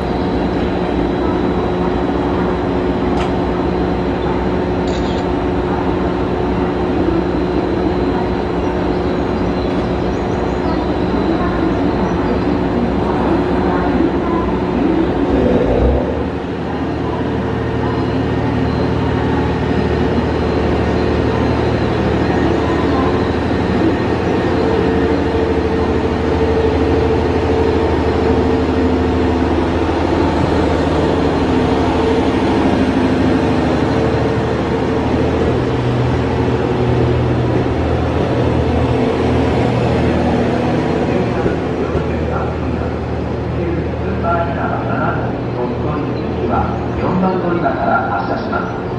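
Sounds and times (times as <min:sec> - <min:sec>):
diesel train engine drone: 0:00.0 - 0:48.9.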